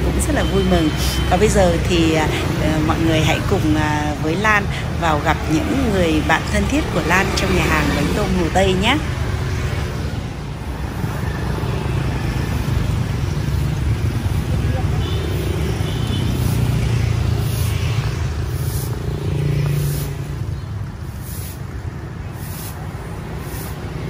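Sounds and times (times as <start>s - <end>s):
motorbikes passing: 0.0s - 24.0s.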